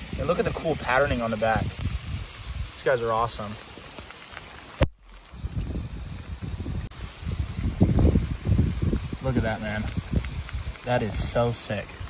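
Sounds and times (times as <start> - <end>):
wind buffeting microphone: 0.0 - 3.3, 5.2 - 12.0.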